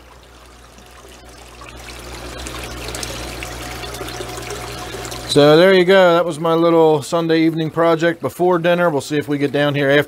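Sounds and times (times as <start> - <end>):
small waterfall trickling and splashing: 0.0 - 5.8.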